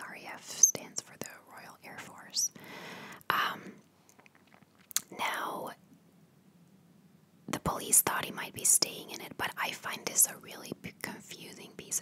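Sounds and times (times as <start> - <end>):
soft whispered speech: 0.0 - 2.5, 7.5 - 12.0.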